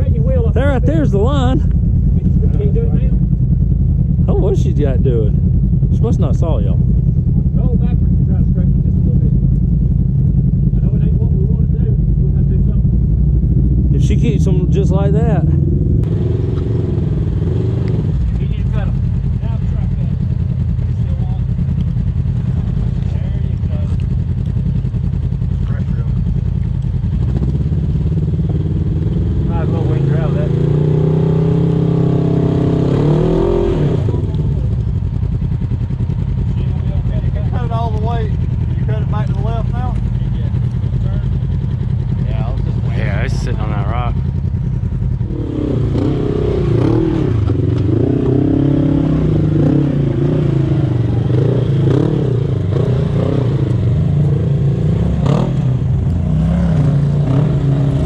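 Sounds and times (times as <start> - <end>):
off-road vehicle engine revving: 0.0 - 58.0.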